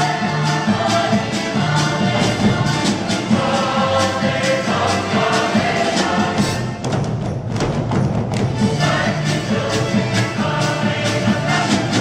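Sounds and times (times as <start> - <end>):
mixed choir singing: 0.0 - 6.8, 8.6 - 12.0
folk band with accordions: 0.0 - 7.0, 8.5 - 12.0.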